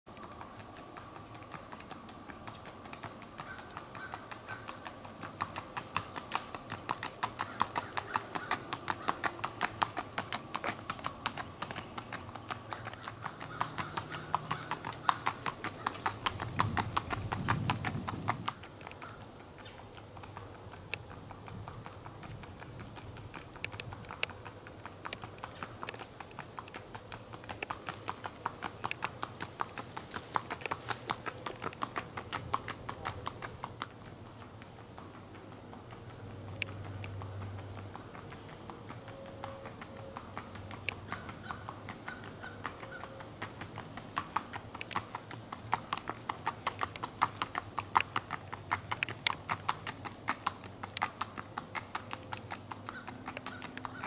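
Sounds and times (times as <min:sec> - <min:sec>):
horse hooves on asphalt: 0:00.1 - 0:54.0.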